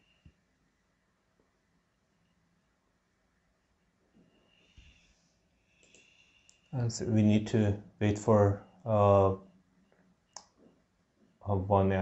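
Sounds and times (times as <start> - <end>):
man speaking: 6.8 - 9.4, 11.5 - 12.0.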